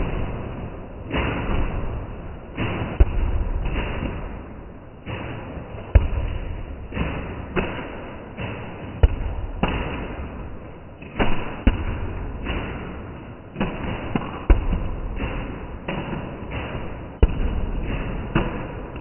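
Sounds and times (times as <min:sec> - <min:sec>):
foam blasters firing puffs: 0:00.0 - 0:19.0
foam projectiles knocking: 0:00.0 - 0:19.0.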